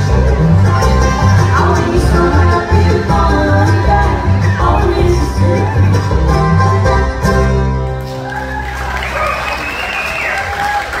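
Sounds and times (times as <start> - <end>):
audience applauding: 8.0 - 11.0.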